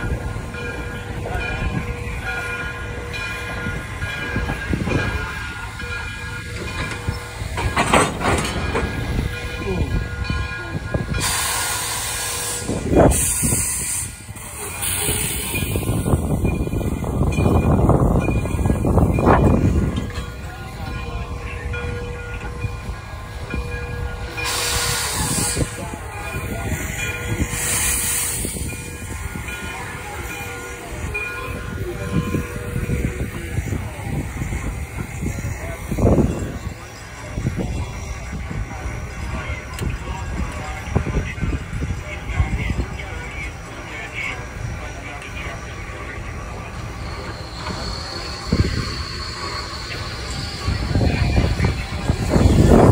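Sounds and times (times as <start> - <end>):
steam locomotive wheels rumbling: 0.0 - 52.9
steam hissing: 10.7 - 19.9, 22.8 - 41.8, 42.7 - 52.9.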